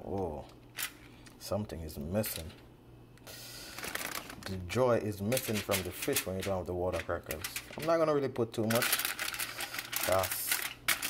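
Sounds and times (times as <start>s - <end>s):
aluminium foil crinkling: 3.6s - 11.0s.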